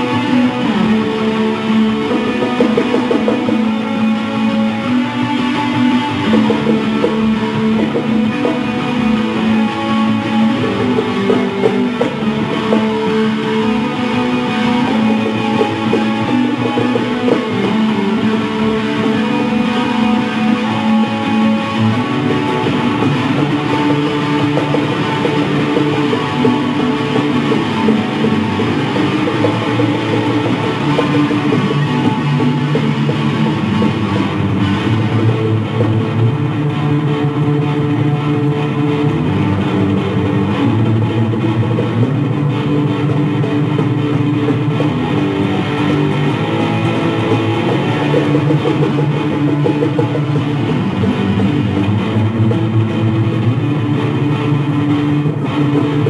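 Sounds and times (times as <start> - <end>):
electric guitars playing: 0.0 - 56.0
instrumental rock band: 0.0 - 56.0.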